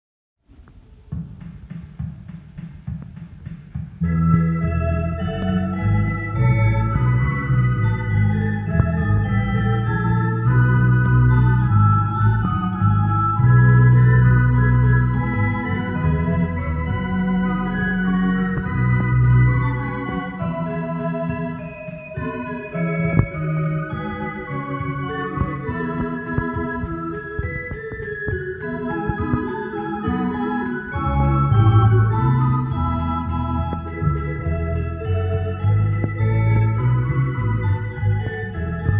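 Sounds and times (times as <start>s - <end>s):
electronic organ playing chords: 4.0s - 38.9s.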